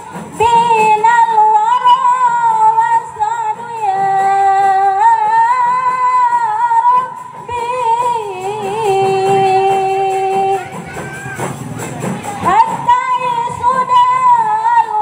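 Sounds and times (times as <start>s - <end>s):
woman singing into a microphone: 0.0s - 10.7s, 12.4s - 15.0s.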